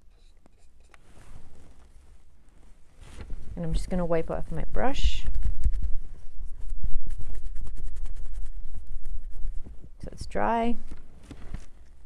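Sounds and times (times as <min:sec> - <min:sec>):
paintbrush scratchy rubbing: 0:00.0 - 0:02.2, 0:04.6 - 0:09.9.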